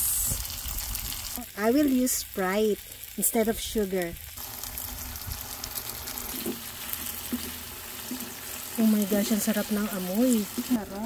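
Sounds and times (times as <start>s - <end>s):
frying pan sizzling: 0.0s - 11.0s.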